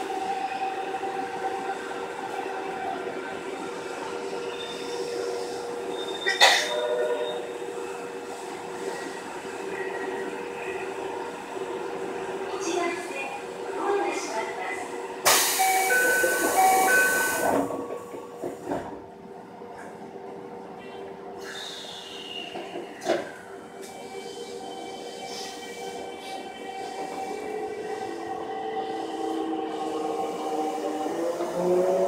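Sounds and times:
train doors shutting: 4.6s - 7.6s, 15.2s - 19.1s.

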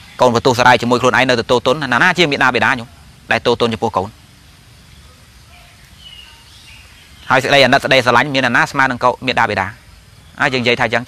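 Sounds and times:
faint background noise: 0.0s - 11.0s
man speaking: 0.2s - 4.2s, 7.3s - 9.8s, 10.4s - 11.0s.

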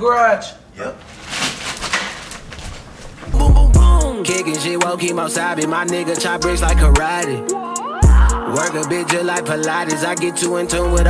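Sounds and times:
people rustling and shuffling: 1.0s - 3.4s.

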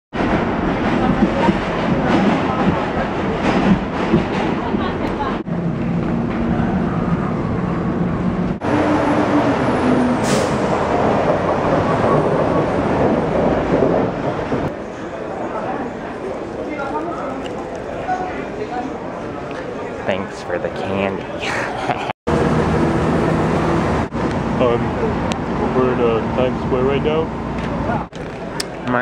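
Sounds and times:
subway train running: 0.1s - 29.0s.

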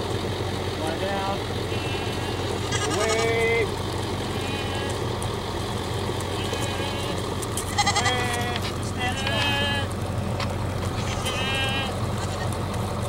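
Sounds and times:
steady low rumble: 0.0s - 13.0s
goats and sheep bleating: 0.9s - 12.9s.

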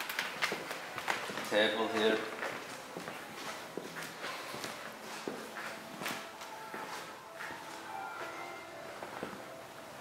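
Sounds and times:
footsteps on a floor: 0.4s - 9.6s.

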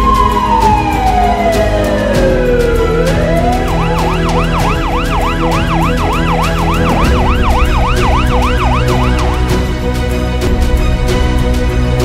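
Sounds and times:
ambulance siren wailing and yelping: 0.0s - 9.7s.

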